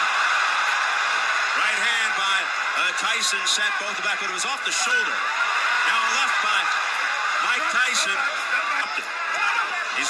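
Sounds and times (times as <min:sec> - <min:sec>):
crowd din: 0:00.0 - 0:10.0
man commentating: 0:01.5 - 0:10.0.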